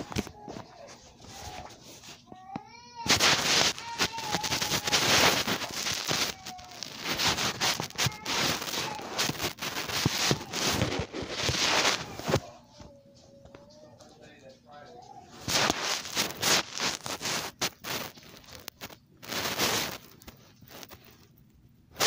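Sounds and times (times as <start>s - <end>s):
phone rubbing against fabric: 3.0s - 12.5s, 15.3s - 21.2s.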